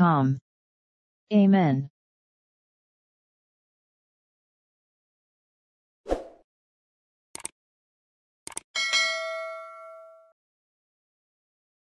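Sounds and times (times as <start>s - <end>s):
metallic bell ding: 8.8s - 10.3s.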